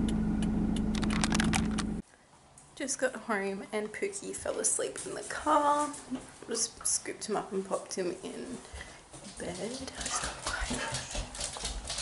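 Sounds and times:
car engine hum in cabin: 0:00.0 - 0:02.0.

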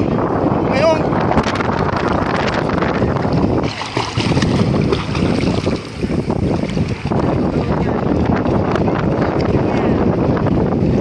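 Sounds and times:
wind buffeting microphone: 0:00.0 - 0:11.0
water sloshing and splashing: 0:01.5 - 0:08.5.

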